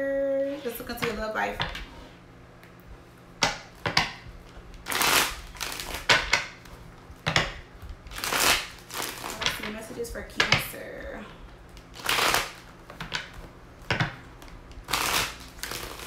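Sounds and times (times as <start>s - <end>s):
cards being shuffled: 11.7s - 16.0s.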